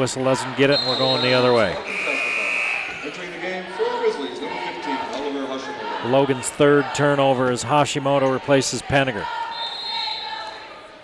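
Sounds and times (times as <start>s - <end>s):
gym crowd voices: 0.0s - 11.0s
referee's whistle blast: 0.7s - 3.2s, 9.5s - 10.4s.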